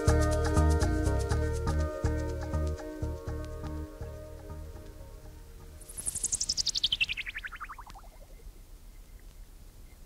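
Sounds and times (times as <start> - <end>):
electronic chirping sweep: 5.8 - 8.5.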